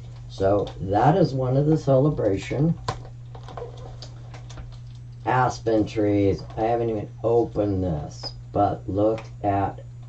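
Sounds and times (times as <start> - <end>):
steady low hum: 0.0 - 10.0
plastic packaging clicks and taps: 2.8 - 4.8.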